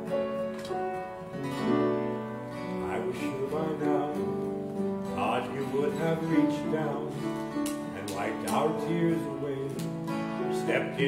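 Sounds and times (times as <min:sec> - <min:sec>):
acoustic guitar music: 0:00.0 - 0:11.0.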